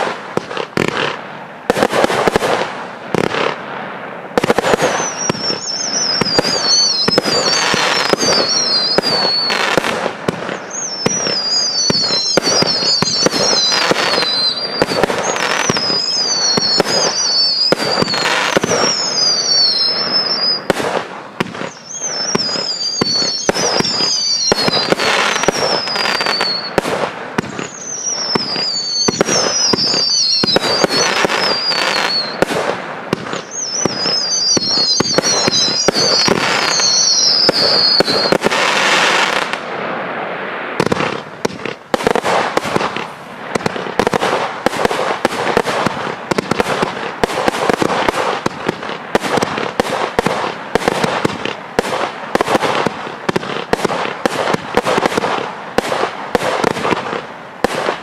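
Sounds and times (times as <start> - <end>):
falling firework whistles: 4.3 - 58.0
fireworks launch thuds and bangs: 4.4 - 19.6, 20.4 - 39.7, 40.8 - 58.0.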